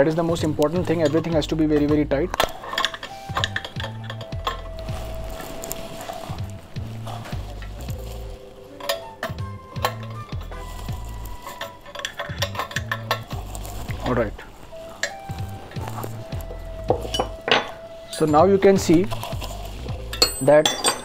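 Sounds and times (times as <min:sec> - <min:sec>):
spanner clinking on metal fitting: 0:02.4 - 0:04.7, 0:11.4 - 0:13.4, 0:20.1 - 0:21.0.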